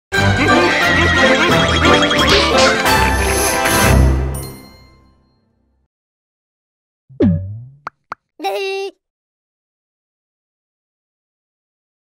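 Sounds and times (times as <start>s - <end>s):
cartoon falling bloop: 7.1s - 8.1s
cartoon character voice call: 8.4s - 9.0s.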